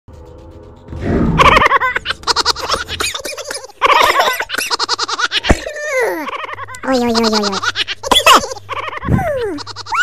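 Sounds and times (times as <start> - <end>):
girl giggling: 1.4 - 10.0.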